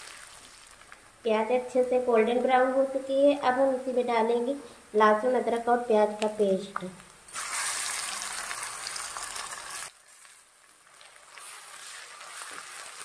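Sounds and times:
paste sizzling in hot oil: 0:00.0 - 0:01.1, 0:07.3 - 0:13.0.

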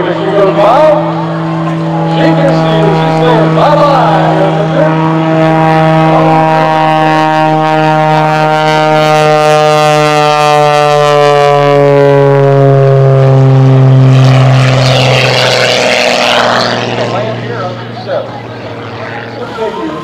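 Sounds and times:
propeller plane engine drone: 0:00.0 - 0:20.0.

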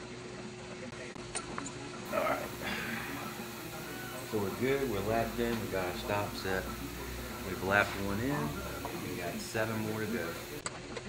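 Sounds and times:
shop equipment humming: 0:01.0 - 0:11.0.

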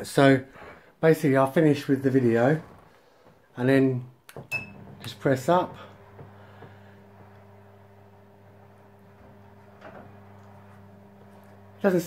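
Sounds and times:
projector screen motor humming: 0:04.5 - 0:12.0.

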